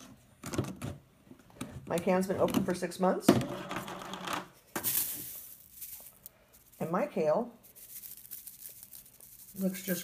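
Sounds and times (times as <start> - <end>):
dried leaves rustling and crunching: 5.0 - 6.9, 7.6 - 10.0.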